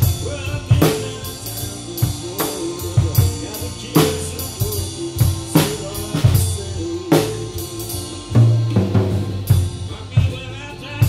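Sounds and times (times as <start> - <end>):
drum hits: 0.0 - 10.6.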